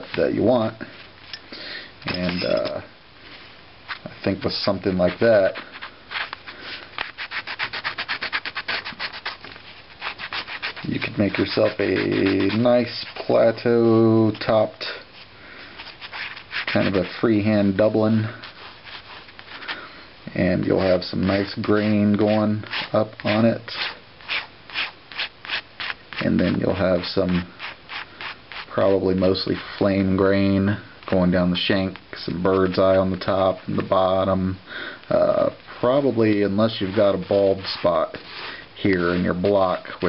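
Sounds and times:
pen scratching on paper: 0:07.1 - 0:09.4, 0:10.0 - 0:13.3, 0:15.8 - 0:17.1.

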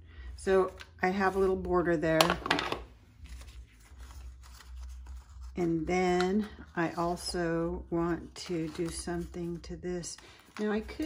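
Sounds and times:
paper card rustling: 0:02.2 - 0:07.3, 0:08.2 - 0:11.0.

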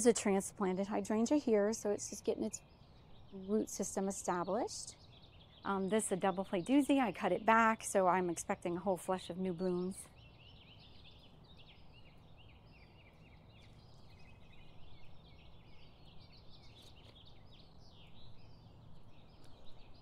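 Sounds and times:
low steady hum: 0:00.0 - 0:20.0
small birds chirping: 0:00.0 - 0:20.0.

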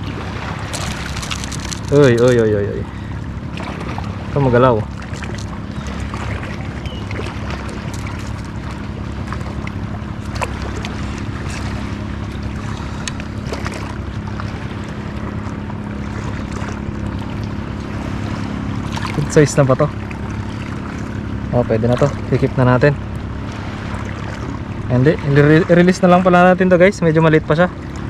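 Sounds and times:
low steady hum: 0:00.0 - 0:28.0
water noise: 0:00.0 - 0:28.0
faint clicks and drips: 0:13.0 - 0:15.6.

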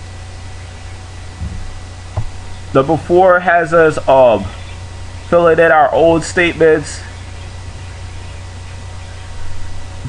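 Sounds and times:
microphone hiss and hum: 0:00.0 - 0:10.0
faint low thump: 0:01.4 - 0:02.4.

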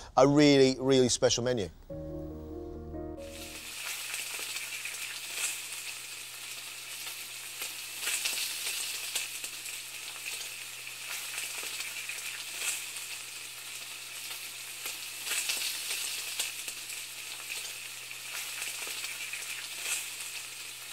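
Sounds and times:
crackling hiss with pops: 0:03.4 - 0:20.9.

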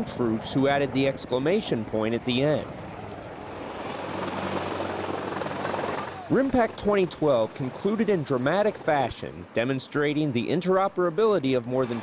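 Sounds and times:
helicopter rotors and engines: 0:00.0 - 0:12.0.

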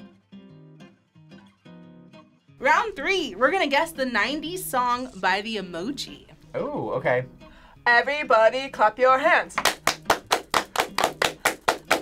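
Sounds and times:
hands clapping: 0:09.5 - 0:12.0.

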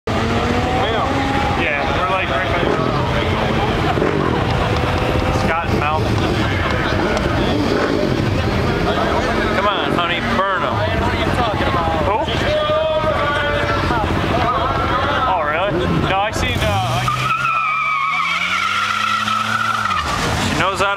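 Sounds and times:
car engine revving: 0:00.1 - 0:20.9.

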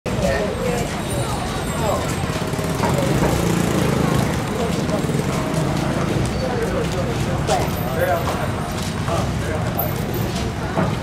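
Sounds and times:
small engine running: 0:01.5 - 0:06.2.

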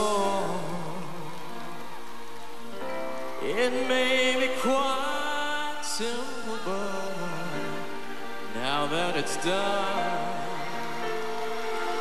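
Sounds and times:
live band playing pop ballad: 0:00.0 - 0:01.8, 0:02.4 - 0:12.0
person singing: 0:00.0 - 0:02.0, 0:02.7 - 0:12.0.

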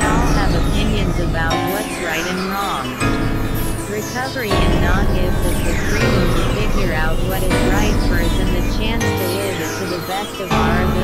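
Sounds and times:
steady low synthesizer drone: 0:00.0 - 0:11.0
wavering synthesizer tones: 0:00.0 - 0:11.0.

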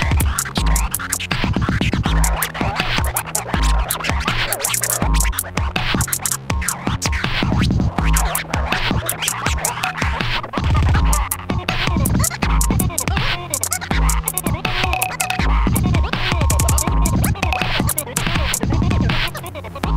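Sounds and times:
hip hop beat: 0:00.0 - 0:19.9
turntable scratching: 0:00.0 - 0:19.9.

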